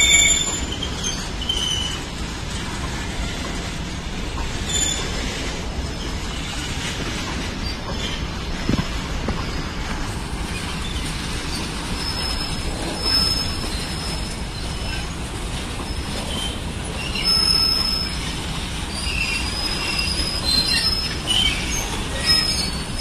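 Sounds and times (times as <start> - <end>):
high wheel squeal: 0.0 - 2.1, 4.6 - 5.3, 9.3 - 15.2, 15.8 - 23.0
train wheels rumbling on rail: 0.0 - 23.0.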